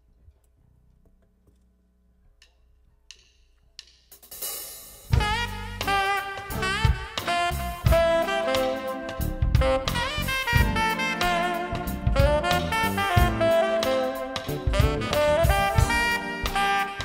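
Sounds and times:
jazz quartet playing: 0:05.1 - 0:17.0.

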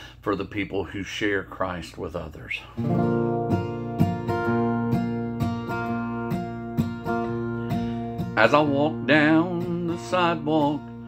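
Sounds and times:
acoustic guitar strumming: 0:02.8 - 0:11.0.

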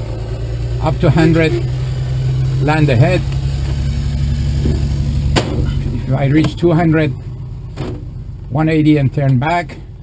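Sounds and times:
propeller engine droning: 0:00.0 - 0:10.0.

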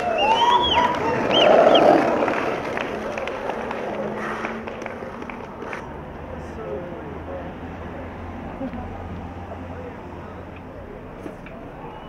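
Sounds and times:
people shouting and cheering: 0:00.0 - 0:05.2, 0:11.5 - 0:12.0
street background noise: 0:00.0 - 0:12.0.

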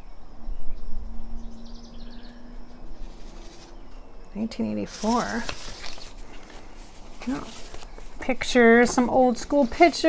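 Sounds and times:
birds chirping: 0:00.0 - 0:10.0
low steady hum: 0:00.0 - 0:10.0
paper rustling: 0:04.8 - 0:10.0.

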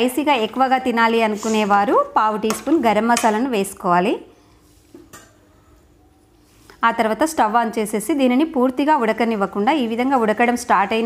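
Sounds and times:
woman talking: 0:00.0 - 0:04.3, 0:06.8 - 0:11.0.

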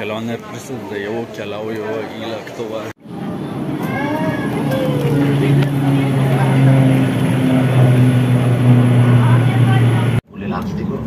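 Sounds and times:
people's voices: 0:00.0 - 0:11.0
low engine hum: 0:03.1 - 0:10.2.

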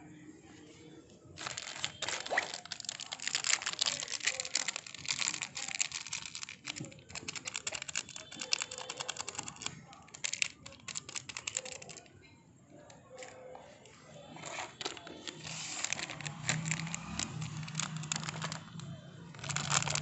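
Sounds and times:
plastic packet crinkling: 0:01.4 - 0:12.2, 0:14.4 - 0:20.0.

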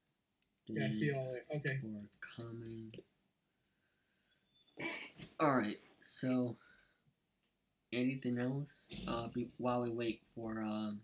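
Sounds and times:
person speaking: 0:00.7 - 0:03.0, 0:08.0 - 0:11.0.

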